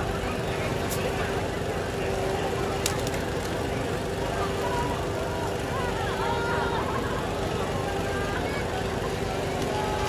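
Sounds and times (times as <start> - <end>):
constant hum: 0.0 - 10.0
indistinct voices: 0.0 - 10.0.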